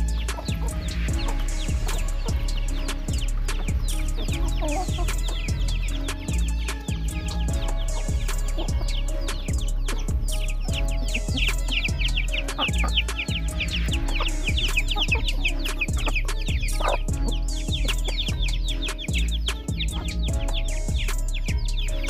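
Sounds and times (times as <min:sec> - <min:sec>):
background music with beat: 0:00.0 - 0:22.0
chicks peeping: 0:00.0 - 0:22.0.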